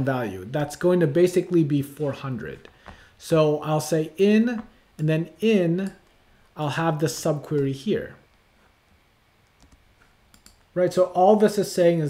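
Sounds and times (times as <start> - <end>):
computer keyboard clicks: 9.6 - 10.6.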